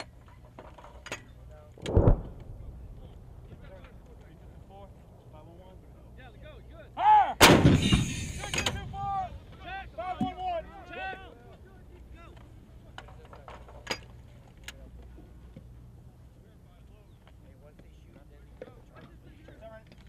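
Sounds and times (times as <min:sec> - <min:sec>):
howitzer blast with rumble: 0:01.8 - 0:05.2, 0:07.4 - 0:10.0.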